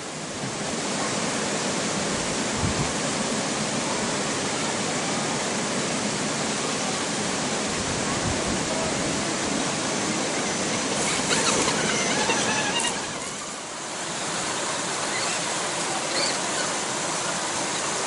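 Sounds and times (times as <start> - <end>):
water rushing in creek and waterfall: 0.0 - 18.0.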